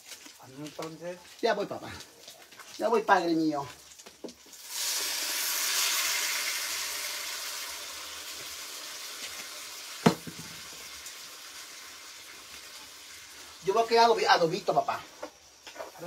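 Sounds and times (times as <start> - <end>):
sauce sizzling in clay pot: 0.0 - 16.0
sharp knock: 10.0 - 10.6.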